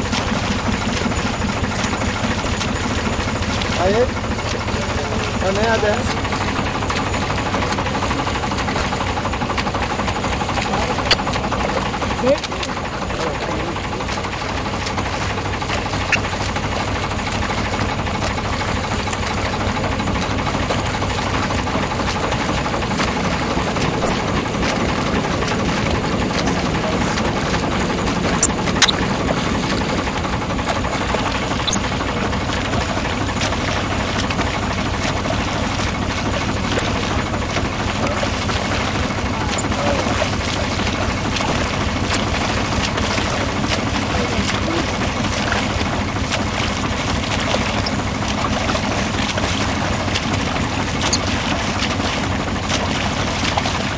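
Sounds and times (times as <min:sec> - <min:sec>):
boat engine humming: 0:00.0 - 0:53.9.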